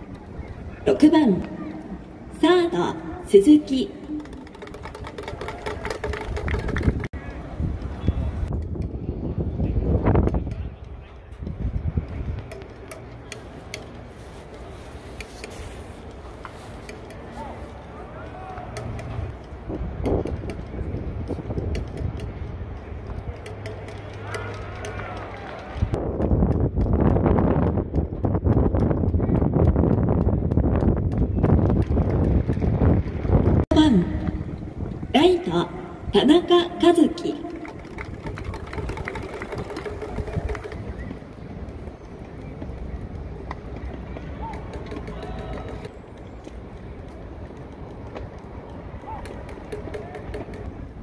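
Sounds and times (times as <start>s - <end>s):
crowd cheering and clapping: 4.2s - 7.2s, 24.0s - 26.0s, 37.4s - 41.1s.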